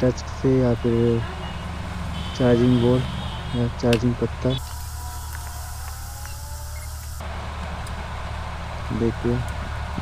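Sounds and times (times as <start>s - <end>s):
low hum: 4.5s - 10.0s.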